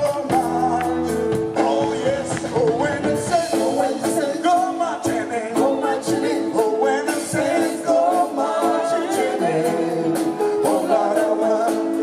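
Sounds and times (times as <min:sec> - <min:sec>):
vocal group singing in harmony: 0:00.0 - 0:12.0.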